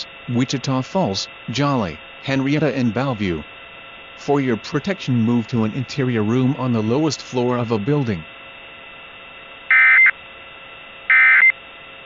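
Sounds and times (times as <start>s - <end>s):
buzzy digital squawk: 9.7s - 10.1s, 11.1s - 11.5s.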